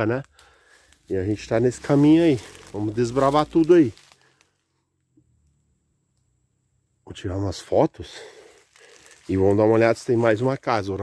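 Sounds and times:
faint ticks: 0:00.2 - 0:01.1.

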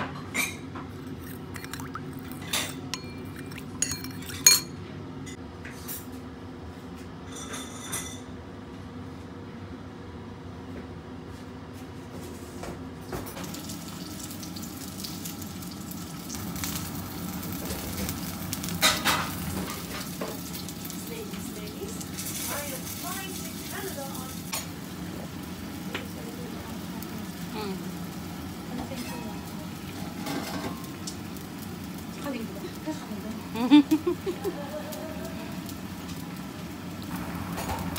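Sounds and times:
food sizzling in oil: 0:13.4 - 0:37.9.

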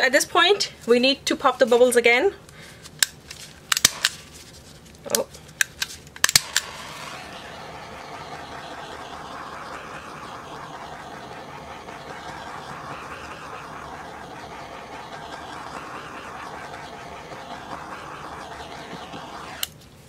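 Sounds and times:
torch flame hissing: 0:03.8 - 0:04.6, 0:06.2 - 0:19.7.

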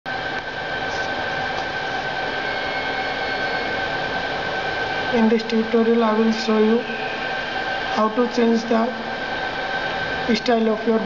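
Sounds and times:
mechanical whirring hum: 0:00.1 - 0:11.0
thin steady whine: 0:00.1 - 0:11.0.

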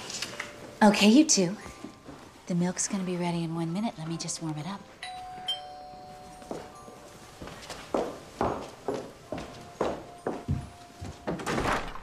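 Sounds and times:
doorbell chime: 0:05.0 - 0:07.6.

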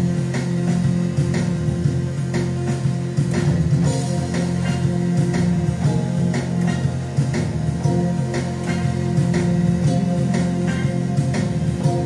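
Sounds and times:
drum machine beat: 0:00.0 - 0:12.0
electronic keyboard music: 0:00.0 - 0:12.0
low bass notes: 0:00.0 - 0:12.0.

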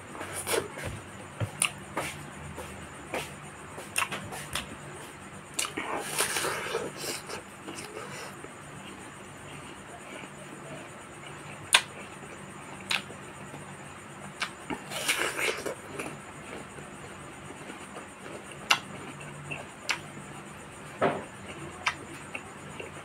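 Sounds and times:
faint steady hum: 0:00.0 - 0:23.0
wet eating clicks: 0:05.5 - 0:05.8, 0:12.8 - 0:13.1, 0:18.5 - 0:20.1.

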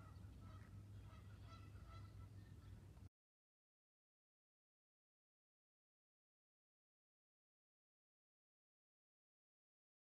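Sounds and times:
farm fowl calling: 0:00.0 - 0:02.7.

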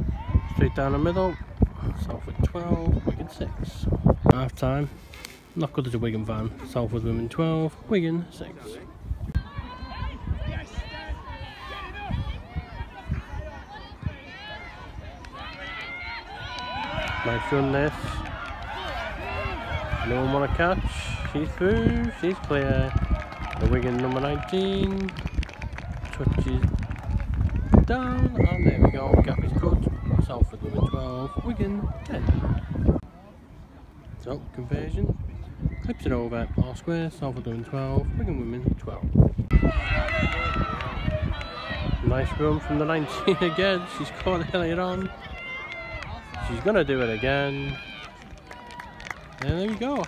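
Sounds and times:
wind rumble on microphone: 0:00.0 - 0:05.1, 0:08.8 - 0:33.1, 0:34.0 - 0:43.1
people shouting: 0:09.4 - 0:22.2, 0:39.5 - 0:49.0.

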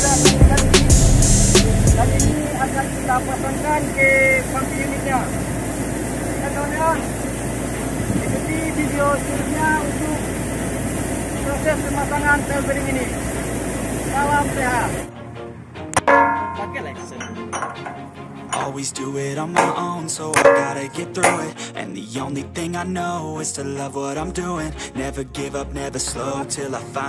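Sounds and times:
engine-like drone: 0:00.0 - 0:21.6
voices speaking: 0:01.7 - 0:07.4, 0:08.0 - 0:13.2, 0:14.0 - 0:15.1
sharp metallic clink: 0:16.0 - 0:18.0.

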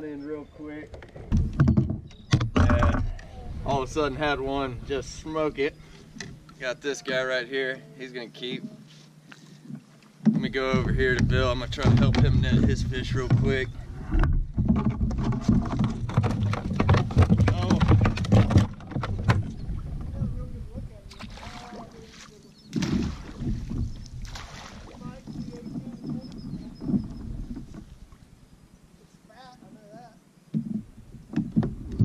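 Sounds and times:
water sloshing: 0:00.3 - 0:29.9
knocks and rattles on plastic kayak: 0:00.8 - 0:05.3, 0:09.6 - 0:28.4, 0:29.6 - 0:32.0
thumps: 0:00.9 - 0:04.0, 0:09.7 - 0:20.4, 0:30.5 - 0:32.0.

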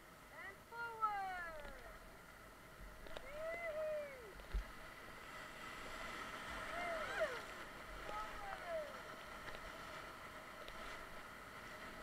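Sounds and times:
person whooping: 0:03.3 - 0:04.4, 0:06.7 - 0:07.5.

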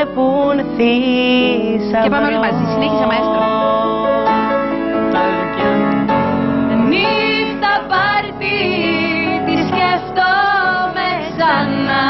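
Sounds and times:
keyboard chords: 0:00.0 - 0:12.0
woman singing: 0:01.3 - 0:03.8.

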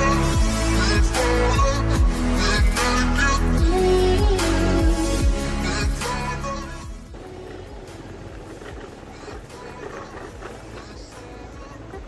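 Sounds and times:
motorbike engine: 0:00.0 - 0:12.0
music: 0:00.0 - 0:12.0.

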